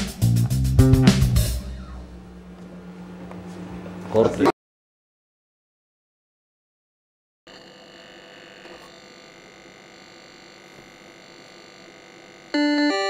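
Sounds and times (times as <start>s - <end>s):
electronic drone: 1.4s - 2.5s.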